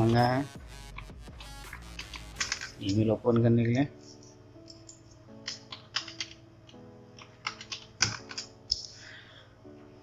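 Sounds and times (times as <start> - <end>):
soft background music: 0.0 - 10.0
keyboard typing: 0.9 - 3.1, 4.0 - 8.9.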